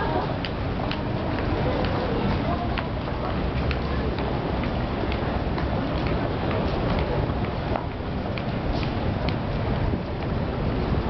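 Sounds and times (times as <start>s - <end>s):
footsteps clicking on pavement: 0.0s - 11.0s
low rumble of city noise: 0.0s - 11.0s.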